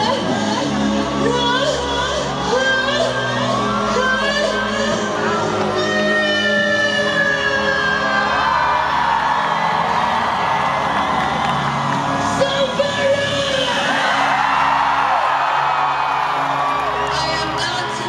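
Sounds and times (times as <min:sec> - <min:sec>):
crowd whooping and yelling: 0:00.0 - 0:18.0
live pop music over sound system: 0:00.0 - 0:18.0.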